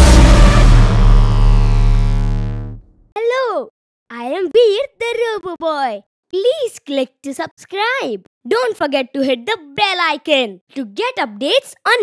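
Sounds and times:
deep rumble: 0.0s - 2.9s
ringing tail of big hit: 0.0s - 2.9s
synthesized chord: 0.0s - 2.9s.

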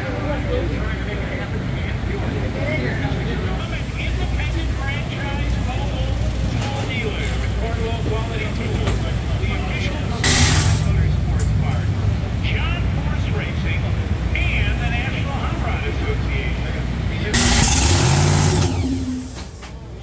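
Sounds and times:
people talking: 0.0s - 20.0s
steady low rumble: 3.1s - 19.6s
hissing air burst: 10.2s - 11.0s, 17.4s - 19.6s.

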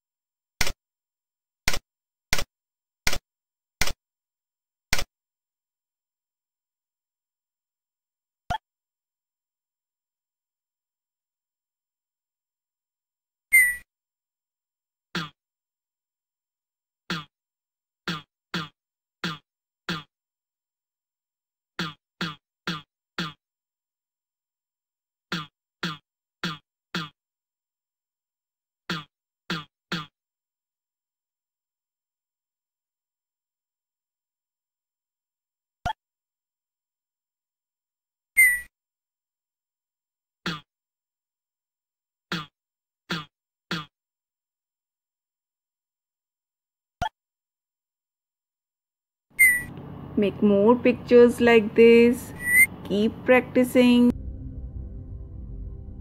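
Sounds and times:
whistle-like beep: 49.4s - 49.7s.

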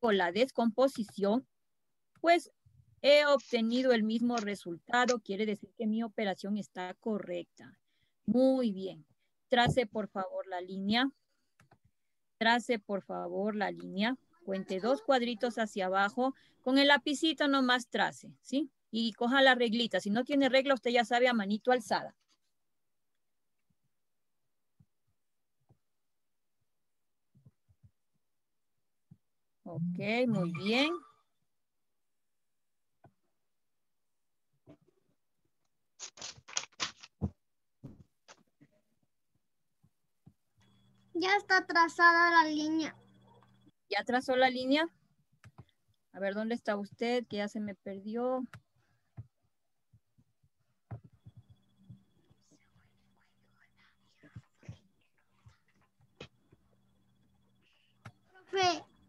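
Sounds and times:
faint whispering voices: 52.2s - 55.8s.

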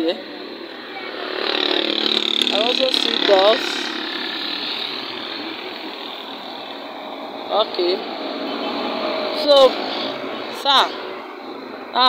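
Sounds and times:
engine running: 0.4s - 12.0s.

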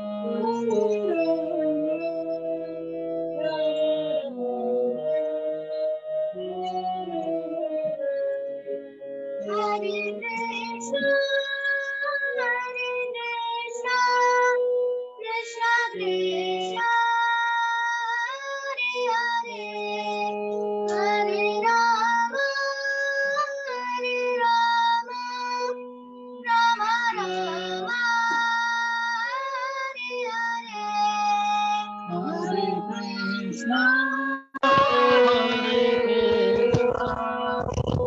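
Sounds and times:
harmonium: 0.0s - 34.0s, 34.6s - 38.0s
girl singing: 0.3s - 2.3s, 3.4s - 4.2s, 9.4s - 14.6s, 15.2s - 25.8s, 26.4s - 38.0s.

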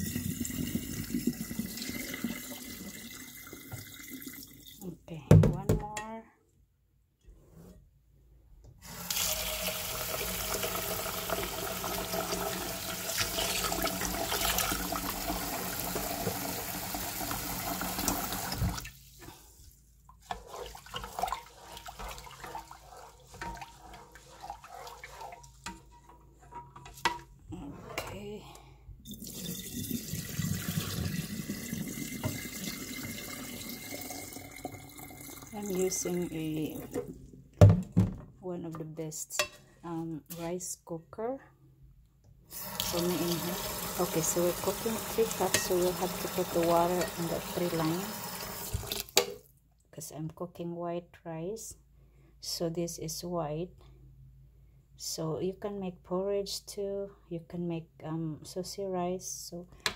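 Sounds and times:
water pouring into drain: 0.0s - 4.8s, 8.9s - 18.9s, 29.1s - 35.9s, 42.5s - 49.1s
water sloshing: 20.2s - 26.1s.

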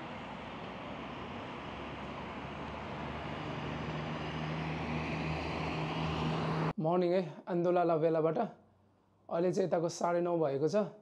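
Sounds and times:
low engine hum: 0.0s - 6.8s
road traffic noise: 0.0s - 6.8s.

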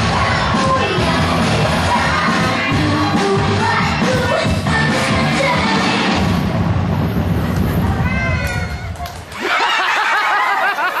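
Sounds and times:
music: 0.0s - 8.6s
high-pitched cackling laugh: 9.4s - 11.0s.

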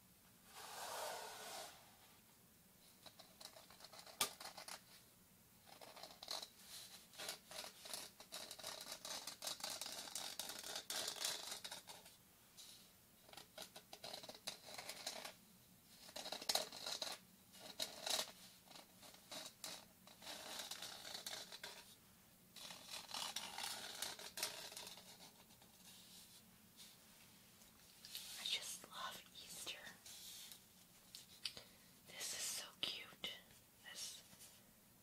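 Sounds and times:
fingernails scratching glitter: 0.5s - 1.9s, 22.6s - 26.2s.

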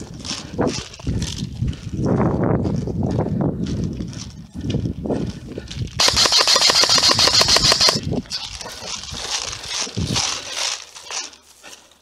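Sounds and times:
footsteps through long grass: 0.0s - 6.0s, 8.0s - 12.0s
airsoft rifle full-auto burst: 6.0s - 8.0s.

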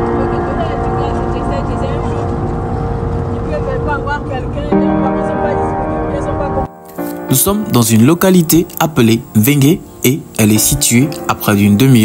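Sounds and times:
car road and engine rumble: 0.0s - 6.6s.

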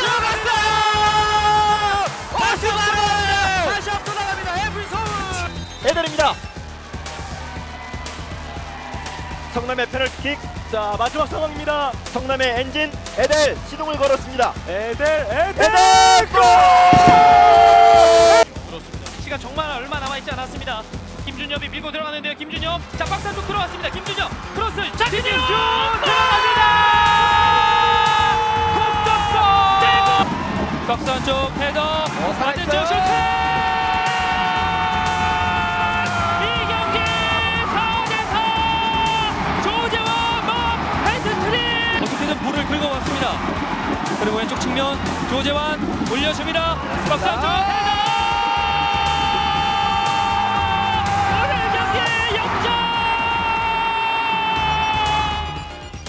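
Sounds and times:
commentator shouting: 0.0s - 6.4s, 9.4s - 18.5s, 22.3s - 56.0s
background music: 0.0s - 56.0s.

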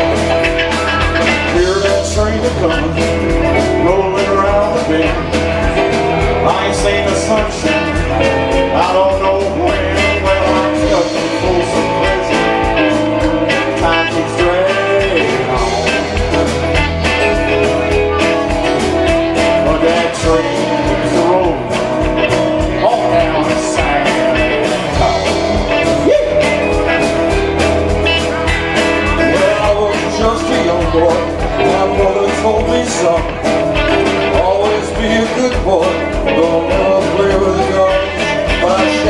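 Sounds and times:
live band playing: 0.0s - 39.0s.

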